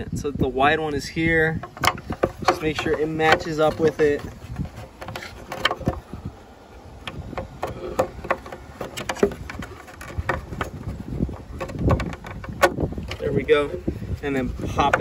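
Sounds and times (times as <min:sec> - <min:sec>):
plastic clicks and knocks: 0:01.6 - 0:06.0, 0:07.0 - 0:13.9.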